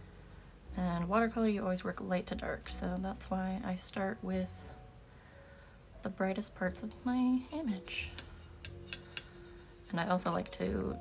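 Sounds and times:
soft background music: 0.0 - 11.0
paintbrush tapping in metal tin: 8.2 - 9.4.

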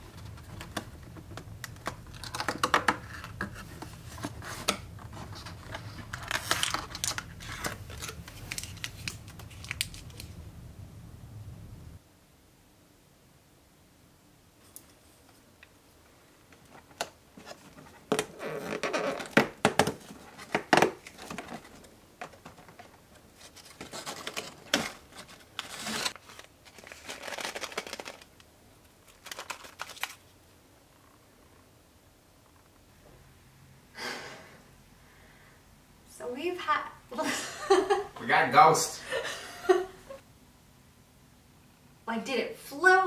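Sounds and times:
cardboard clicks and crackles: 0.1 - 10.3, 16.6 - 30.3.

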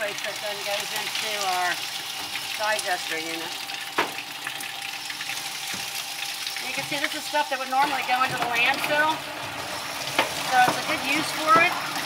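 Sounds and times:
tap water running into a steel sink: 0.0 - 12.0.

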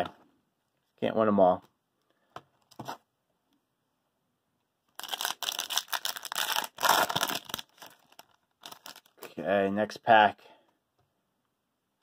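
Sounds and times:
plastic wrapper tearing and crinkling: 4.9 - 9.3.

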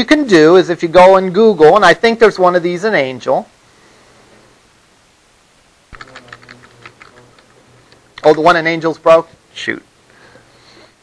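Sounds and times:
typing on computer keyboard: 5.9 - 7.5, 8.2 - 8.5.

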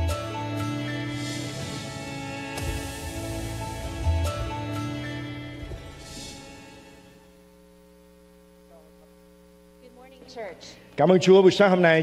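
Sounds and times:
electrical mains hum: 1.0 - 12.0.

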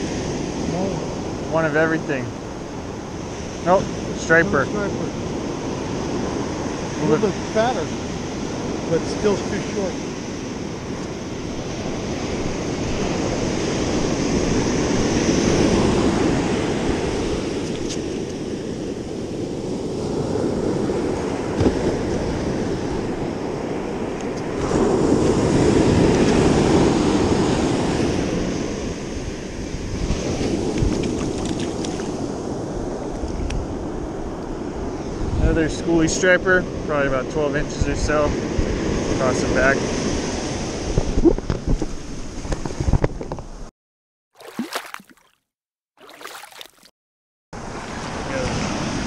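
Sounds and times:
ocean surf breaking on beach: 0.0 - 35.4, 47.6 - 49.0.

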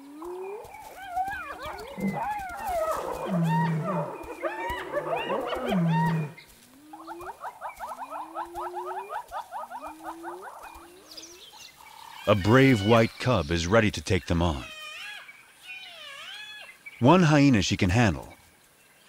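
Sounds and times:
hyenas whooping and giggling: 0.0 - 11.4.

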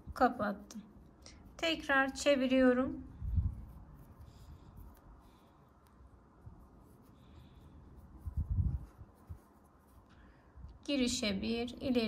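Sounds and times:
crochet hook rubbing yarn: 0.0 - 10.4.

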